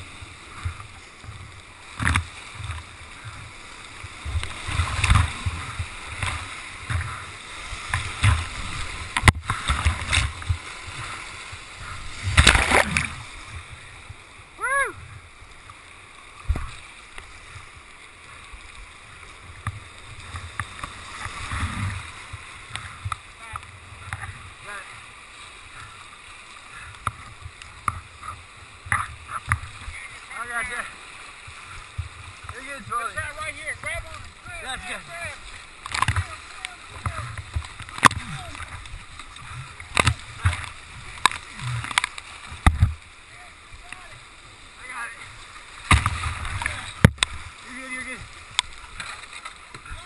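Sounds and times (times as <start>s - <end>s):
whitewater rapids rushing: 0.0s - 15.2s, 20.1s - 50.0s
sharp knocks on kayak: 45.8s - 47.4s.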